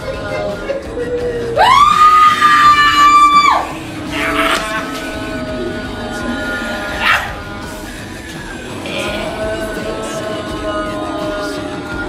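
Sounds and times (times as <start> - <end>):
music with held tones: 0.0 - 12.0
loud high-pitched scream: 1.6 - 3.8.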